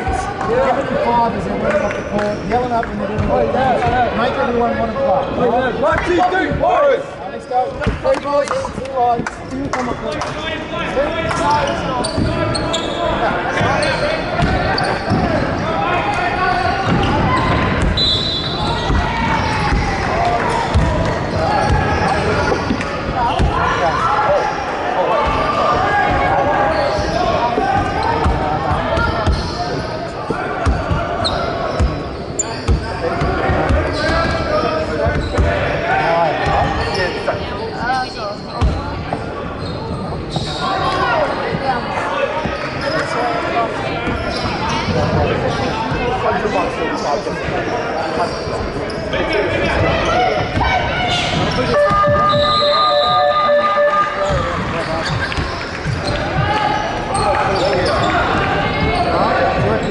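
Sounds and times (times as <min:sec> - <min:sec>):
overlapping voices in a hall: 0:00.0 - 0:07.1, 0:07.8 - 0:37.6, 0:40.4 - 0:59.9.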